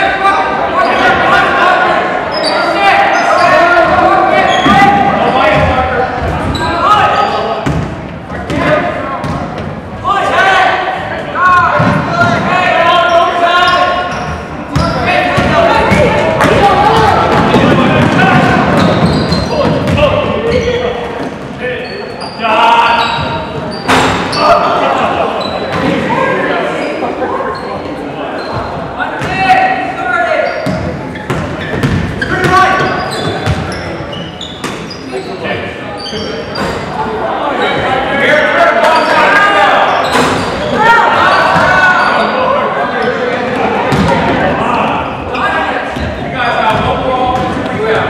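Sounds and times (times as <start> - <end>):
crowd and players shouting: 0.0 - 7.7, 8.4 - 48.0.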